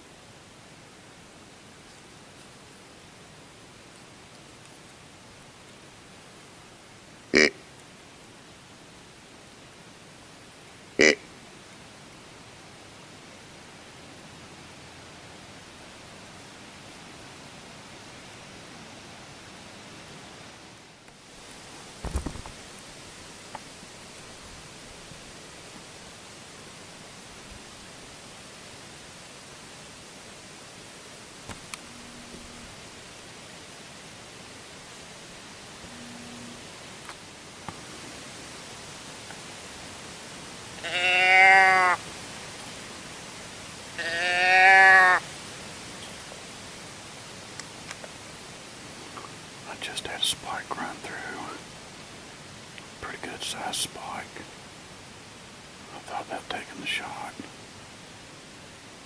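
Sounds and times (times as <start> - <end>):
steady background hiss: 0.0 - 59.0
loud bleats: 7.3 - 7.6, 11.0 - 11.2, 40.8 - 42.0, 44.0 - 45.2
soft whispering: 49.2 - 51.7, 53.0 - 54.5, 55.9 - 57.6.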